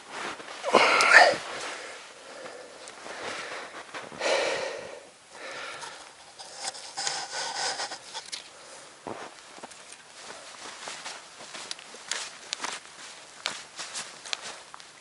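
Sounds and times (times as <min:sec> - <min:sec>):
snow brushed and scraped: 0:00.0 - 0:04.2, 0:09.0 - 0:14.6
winter clothing rustling: 0:00.0 - 0:15.0.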